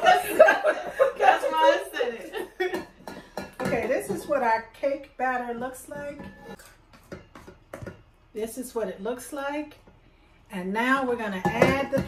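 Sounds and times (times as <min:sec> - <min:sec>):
spatula scraping metal bowl: 0:05.6 - 0:07.9.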